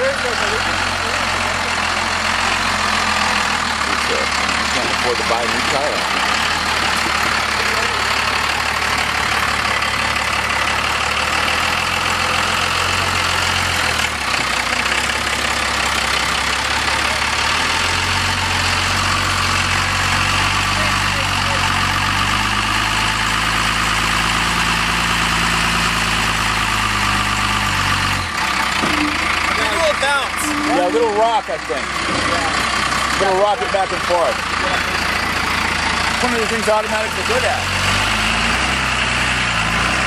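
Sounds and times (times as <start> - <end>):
car engine running at low revs: 0.0 - 40.0.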